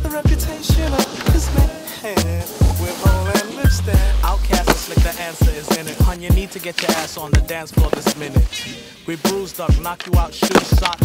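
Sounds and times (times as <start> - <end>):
hip-hop beat with deep bass: 0.0 - 11.0.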